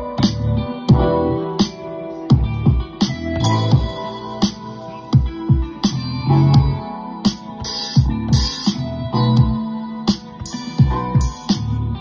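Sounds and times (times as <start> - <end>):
hip hop beat: 0.0 - 12.0
deep kick drums: 0.9 - 1.2, 2.3 - 3.0, 5.2 - 5.8.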